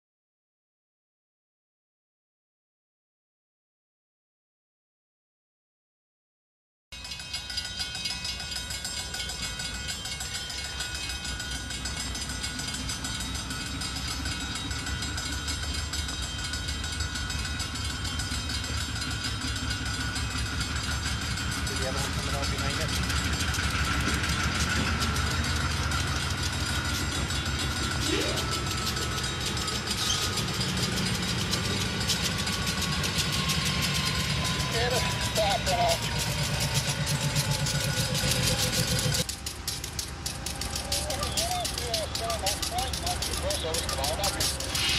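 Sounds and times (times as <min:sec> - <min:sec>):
diesel locomotive engine rumble: 0:07.0 - 0:44.9.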